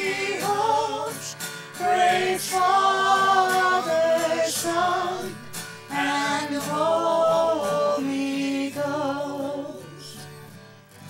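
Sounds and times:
group of voices singing: 0.0s - 10.2s
acoustic guitar: 0.0s - 11.0s.

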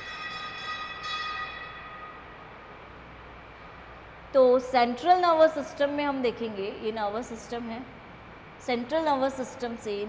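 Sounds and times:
sustained ringing tone: 0.0s - 2.6s.

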